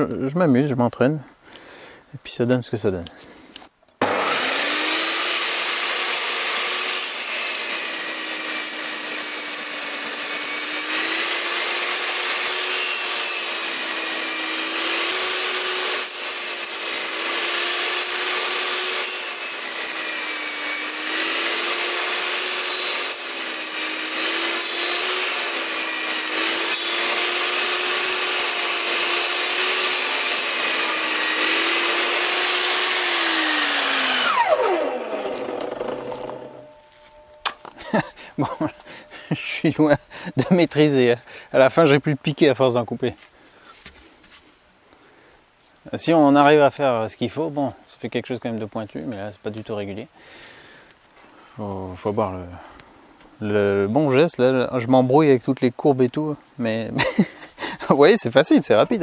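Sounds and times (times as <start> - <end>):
table saw motor running: 4.0 - 36.8
saw blade cutting wood: 4.0 - 39.7.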